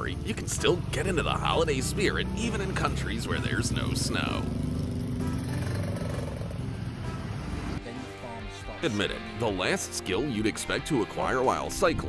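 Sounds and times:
road traffic: 0.0s - 7.8s.

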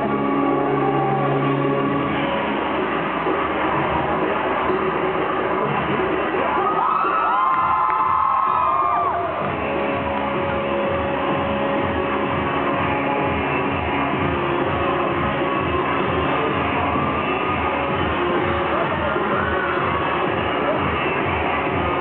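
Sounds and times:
music with a steady beat: 0.0s - 22.0s
crowd cheering and whooping: 0.3s - 2.4s, 5.9s - 10.2s, 15.2s - 22.0s.

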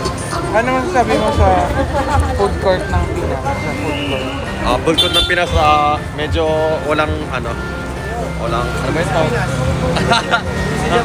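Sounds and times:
street crowd rumble: 0.0s - 11.0s
people talking: 0.3s - 7.6s.

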